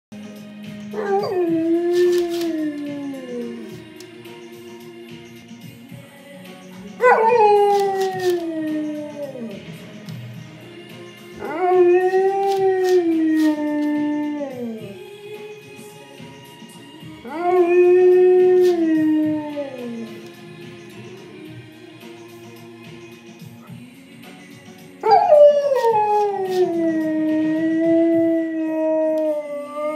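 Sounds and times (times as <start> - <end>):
dog howling: 1.0 - 3.8, 7.0 - 9.6, 11.4 - 15.1, 17.2 - 20.2, 25.0 - 29.9.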